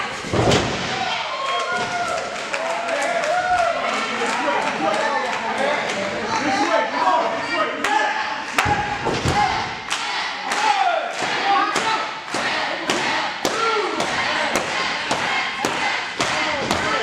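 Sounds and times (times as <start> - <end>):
people shouting: 6.5 - 17.0.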